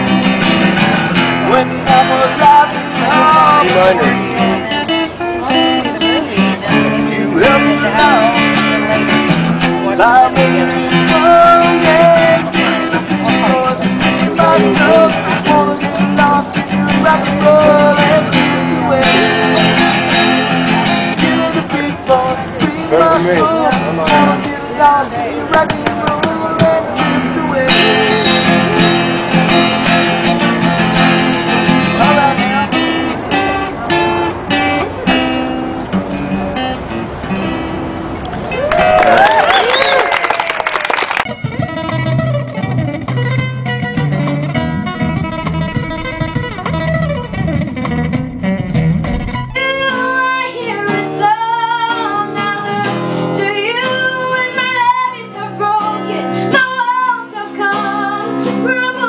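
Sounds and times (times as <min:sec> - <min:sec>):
amplified acoustic guitar: 0:00.0 - 0:39.7, 0:41.0 - 0:59.0
person singing: 0:01.6 - 0:04.7, 0:05.5 - 0:29.6, 0:49.5 - 0:59.0.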